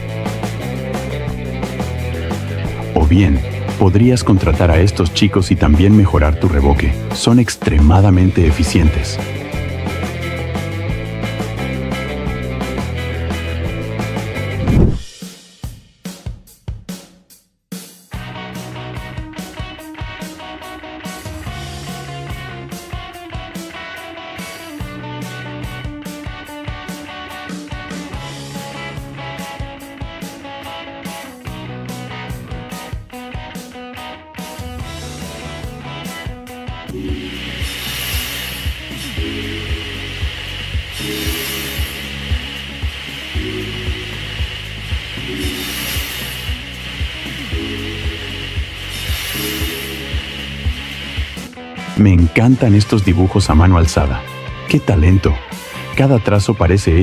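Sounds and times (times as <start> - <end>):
plucked guitar-like background music: 0.0 - 15.0, 18.2 - 57.0.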